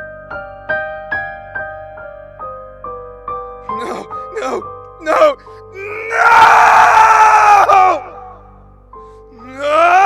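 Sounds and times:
person screaming in grief: 0:03.8 - 0:08.5, 0:09.4 - 0:10.0.

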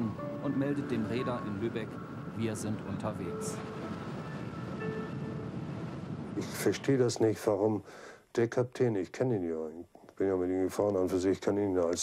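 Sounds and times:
ship engine and water rumble: 0:00.8 - 0:06.8.

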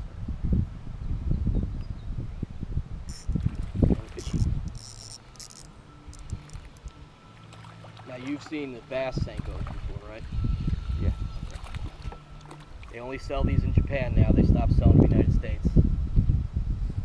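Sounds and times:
wind buffeting microphone: 0:00.0 - 0:07.2, 0:09.0 - 0:17.0
faint steady hum: 0:00.1 - 0:17.0
high rattling clicks: 0:03.1 - 0:07.0
water lapping against boat hull: 0:03.1 - 0:13.1.

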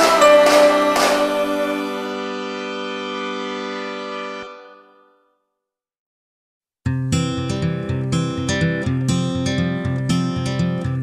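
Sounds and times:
held musical chord: 0:00.0 - 0:05.2.

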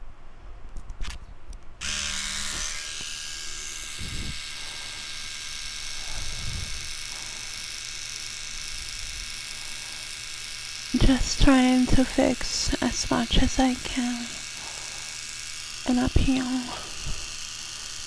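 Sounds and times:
electric trimmer buzzing: 0:01.8 - 0:18.0.

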